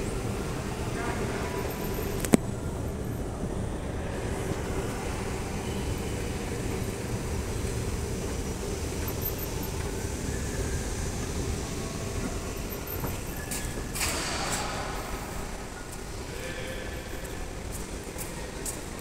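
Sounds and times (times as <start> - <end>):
escalator running: 0.0 - 14.3.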